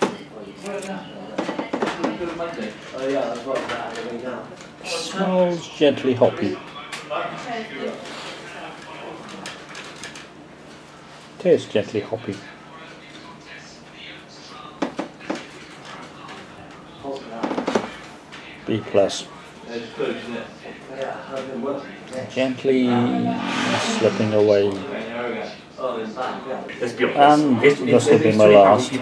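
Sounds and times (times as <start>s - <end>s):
people chatting in a pub: 0.0s - 29.0s.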